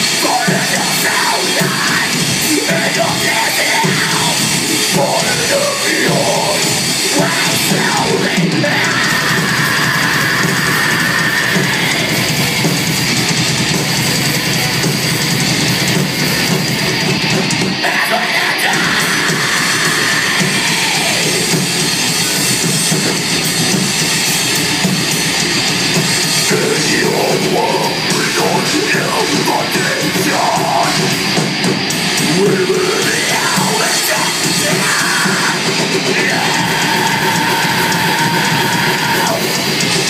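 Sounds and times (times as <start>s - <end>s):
distorted electric guitars: 0.0s - 40.0s
drum kit: 0.0s - 40.0s.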